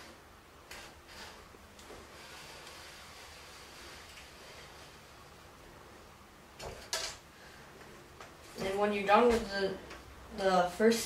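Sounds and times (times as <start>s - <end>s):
metal t-square sliding: 0.7s - 1.5s
scrape and knock: 0.7s - 5.0s.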